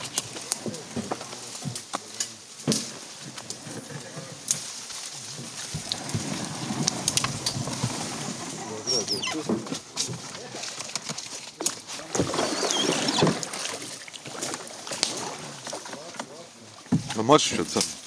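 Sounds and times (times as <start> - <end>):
voices talking: 8.0 - 13.5
wood knocking against canoe hull: 16.2 - 17.3.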